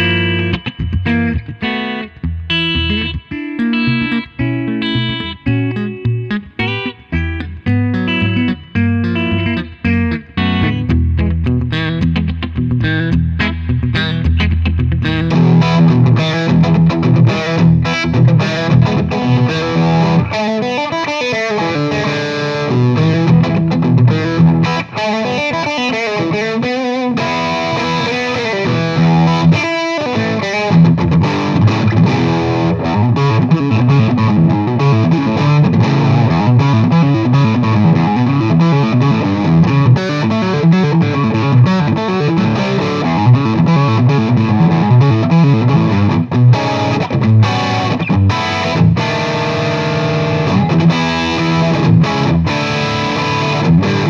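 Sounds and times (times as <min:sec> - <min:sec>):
electric guitar notes and chords: 0:00.0 - 0:54.0.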